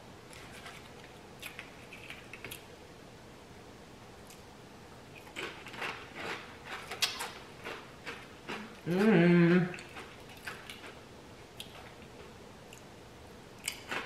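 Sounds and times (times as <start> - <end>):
tortilla chip crunching: 5.2 - 8.9, 9.7 - 11.0, 13.6 - 14.0.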